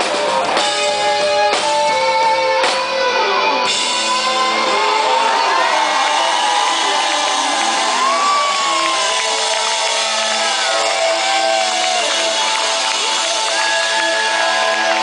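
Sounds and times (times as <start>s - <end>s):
electric guitar bending long notes: 0.0s - 15.0s
live rock band playing: 0.0s - 15.0s.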